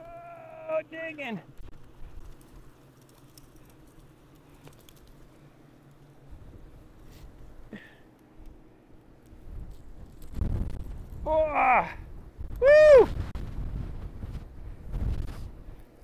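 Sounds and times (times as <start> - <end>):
wind rumbling on microphone: 9.3 - 16.0.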